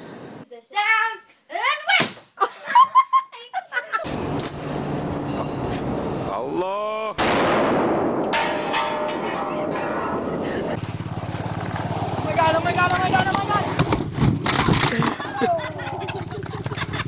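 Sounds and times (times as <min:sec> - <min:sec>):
loud launcher blast with echo: 0:07.2 - 0:10.8
small engine running: 0:10.8 - 0:17.0.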